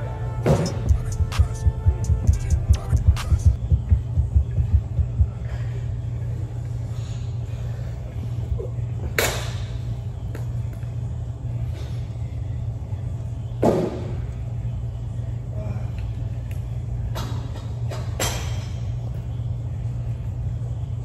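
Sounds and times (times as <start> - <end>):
low rumble of gym room: 0.0 - 21.0.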